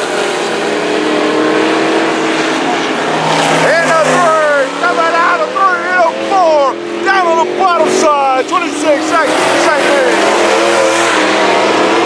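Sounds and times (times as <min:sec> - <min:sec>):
race car engines roaring: 0:00.0 - 0:12.0
race car passing close: 0:00.0 - 0:12.0.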